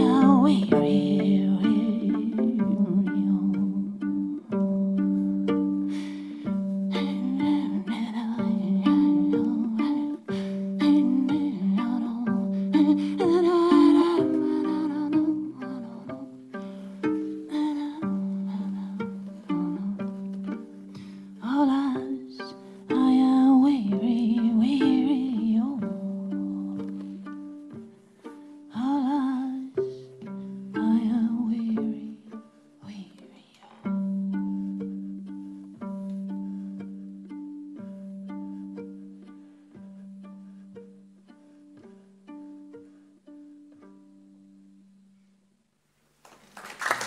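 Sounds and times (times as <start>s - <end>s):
wordless singing with vibrato: 0.0s - 4.5s, 5.9s - 16.3s, 21.4s - 26.9s, 30.8s - 33.4s
fiddle plucked pizzicato: 0.0s - 45.2s.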